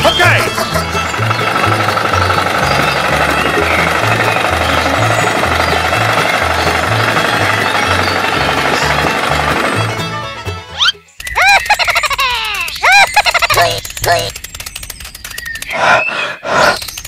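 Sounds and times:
small tractor engine rattling: 0.0 - 10.6, 11.3 - 15.8.

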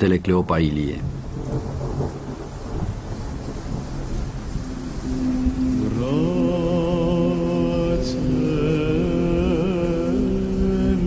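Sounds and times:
steady rain: 0.0 - 11.0
low rumbling thunder: 1.0 - 7.5.

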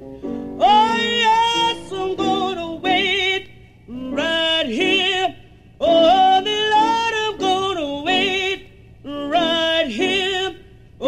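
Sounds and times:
person singing with vibrato: 0.4 - 11.0.

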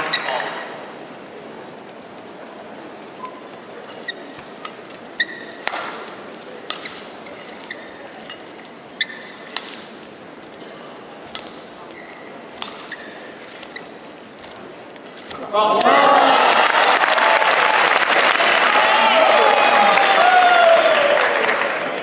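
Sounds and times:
shoes squeaking on court floor: 0.0 - 0.8, 3.1 - 15.5
quiet crowd murmur: 0.0 - 20.0
rackets hitting shuttlecock: 4.4 - 8.4, 9.0 - 10.0, 11.2 - 13.8.

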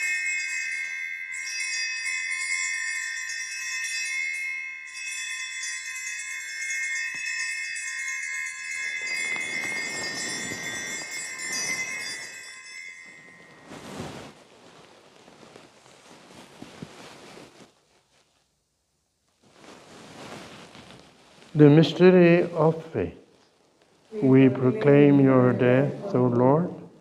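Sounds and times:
altar bells jingling: 0.0 - 14.5
low rustle: 8.5 - 26.2.

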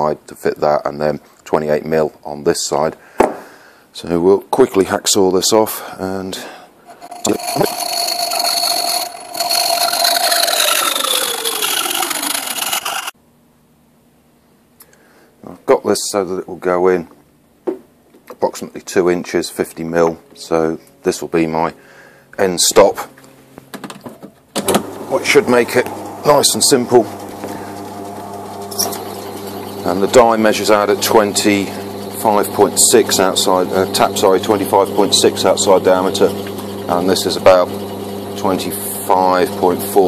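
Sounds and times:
hacksaw cutting metal tube: 6.9 - 13.1, 25.3 - 40.0
metal lathe motor hum: 6.9 - 13.1, 24.7 - 40.0.

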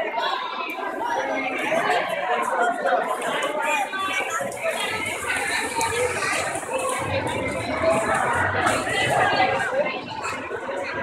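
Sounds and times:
echoing chatter of voices: 0.0 - 11.0.

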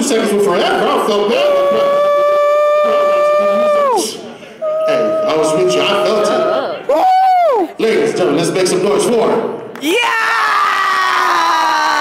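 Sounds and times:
voices crying out: 0.6 - 7.7
long high-pitched yell: 1.4 - 7.7.

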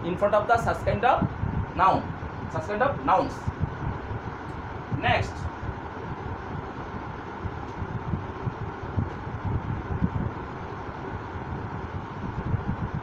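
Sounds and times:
low unsteady rumble: 0.0 - 13.0.

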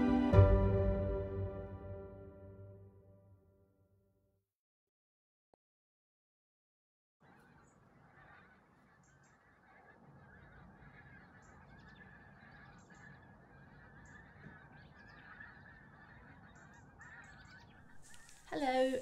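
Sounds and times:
geese honking: 7.2 - 18.8.

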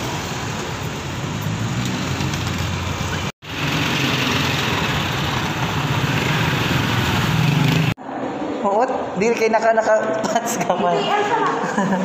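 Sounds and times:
cars and motorcycles passing: 0.0 - 8.6.

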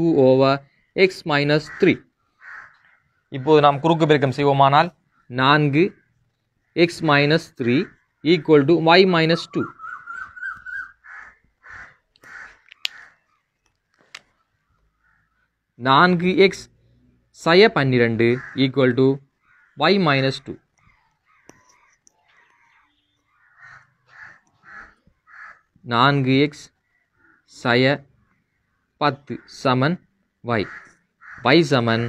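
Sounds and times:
crow cawing: 0.7 - 4.0, 5.0 - 8.7, 9.5 - 13.6, 14.2 - 15.7, 18.2 - 25.8, 26.8 - 27.6, 28.2 - 29.6, 30.2 - 32.0
man's voice: 6.8 - 9.8, 31.4 - 32.0
marker squeaking on whiteboard: 20.8 - 25.6.

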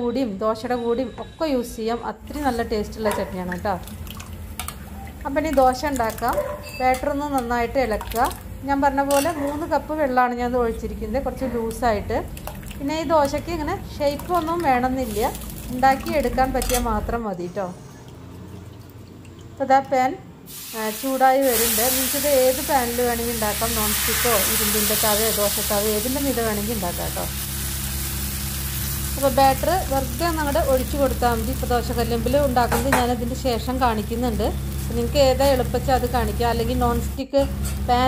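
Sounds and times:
batter sizzling on a hot pan: 20.5 - 32.8.

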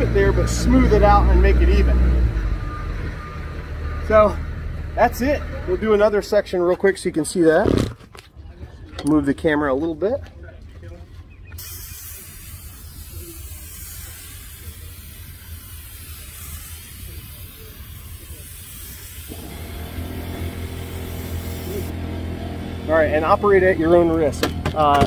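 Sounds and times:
spray gun hissing: 11.6 - 22.0
low engine drone: 19.3 - 25.0.

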